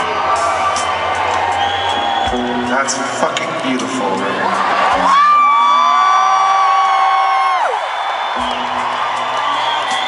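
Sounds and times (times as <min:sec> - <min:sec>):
live rock music: 0:00.0 - 0:07.7, 0:08.3 - 0:10.0
crowd cheering: 0:00.0 - 0:10.0
long high shout: 0:05.0 - 0:08.0.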